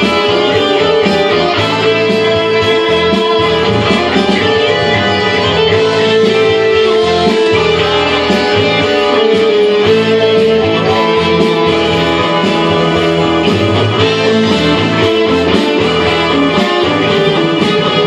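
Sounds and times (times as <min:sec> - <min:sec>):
electric guitar lead: 0:00.0 - 0:18.0.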